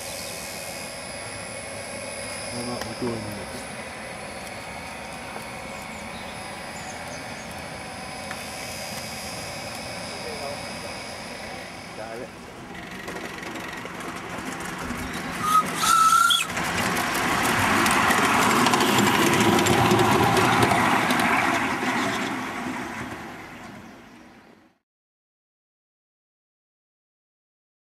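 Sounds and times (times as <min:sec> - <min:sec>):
steam locomotive running past: 0:00.0 - 0:24.8
steam locomotive whistle: 0:15.4 - 0:16.5.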